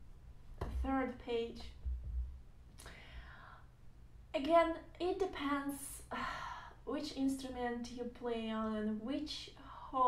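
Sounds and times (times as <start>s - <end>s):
low thump: 1.8s - 2.4s
person breathing: 2.8s - 3.8s, 6.1s - 6.8s.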